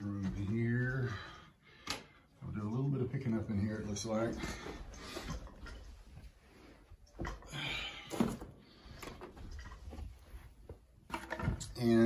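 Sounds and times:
rustling on carpet: 0:09.3 - 0:11.0.

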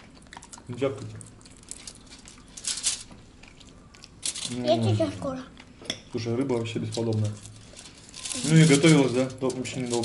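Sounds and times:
foil rustling and scraping: 0:01.7 - 0:03.2, 0:04.2 - 0:04.9, 0:06.8 - 0:10.0.

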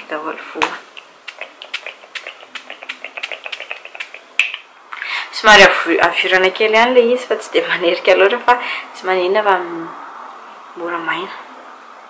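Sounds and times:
spray bottle spritzing: 0:01.2 - 0:04.6.

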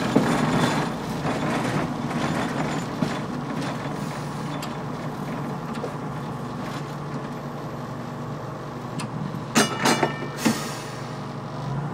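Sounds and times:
rail car running on track: 0:00.0 - 0:11.9
ringing metallic strikes: 0:09.6 - 0:10.6.

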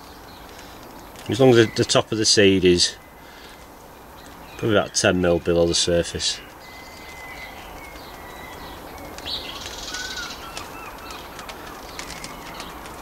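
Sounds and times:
birds chirping: 0:00.0 - 0:13.0
low outdoor hum: 0:00.0 - 0:13.0.

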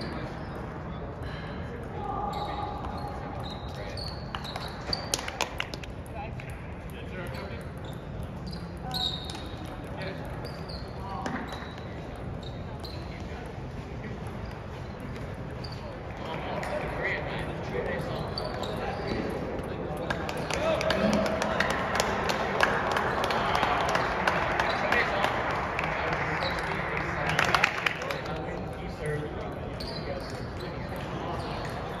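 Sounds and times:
sneakers squeaking on floor: 0:00.0 - 0:01.0, 0:01.7 - 0:05.4, 0:07.1 - 0:20.1, 0:28.1 - 0:32.0
indistinct voices in a large hall: 0:00.0 - 0:32.0.

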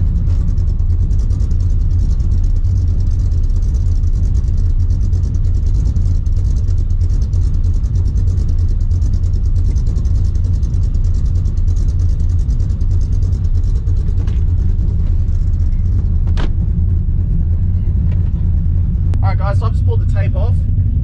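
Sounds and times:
car engine drone: 0:00.0 - 0:21.0
road noise inside car: 0:00.0 - 0:21.0.

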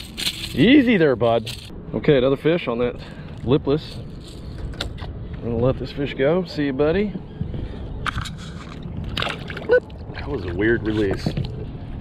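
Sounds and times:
water splashing and sloshing: 0:08.1 - 0:11.8.

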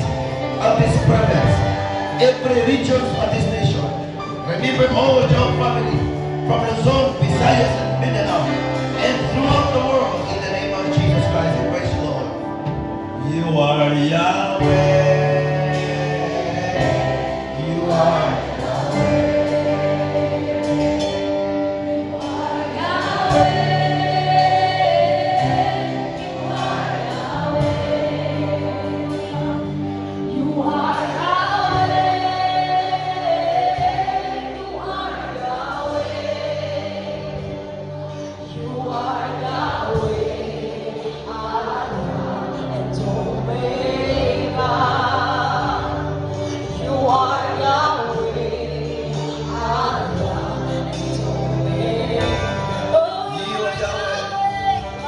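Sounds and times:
moving bass line: 0:00.0 - 0:55.0
sustained instrumental chords: 0:00.0 - 0:55.0
voices singing together: 0:00.0 - 0:55.0
worship band playing: 0:00.0 - 0:55.0.

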